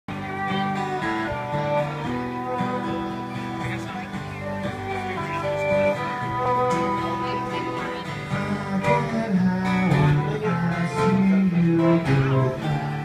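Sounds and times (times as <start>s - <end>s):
plucked string music: 0.1s - 13.0s.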